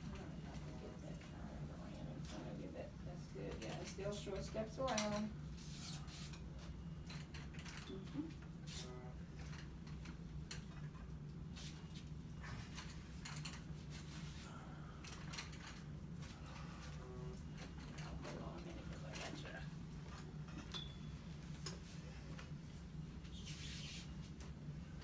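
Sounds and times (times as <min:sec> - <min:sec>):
low room hum: 0:00.0 - 0:25.0.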